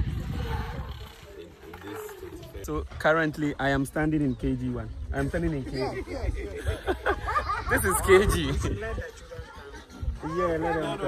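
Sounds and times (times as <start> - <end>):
low rumble on microphone: 0.0 - 3.0
faint voices: 0.0 - 11.0.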